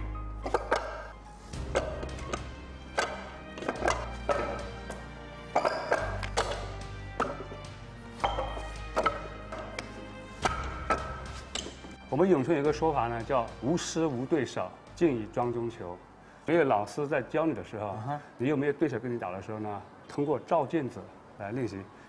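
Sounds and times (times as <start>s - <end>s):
background music with low bass: 0.0s - 16.2s
wooden knocks on wooden dummy: 8.2s - 12.0s.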